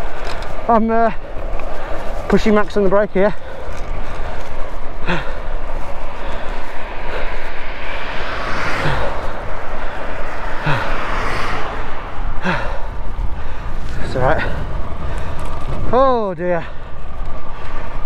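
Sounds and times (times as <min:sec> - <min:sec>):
scooter wheels rolling on tarmac: 0:00.0 - 0:18.0
wind on microphone: 0:03.4 - 0:18.0
person sighing: 0:08.6 - 0:12.9.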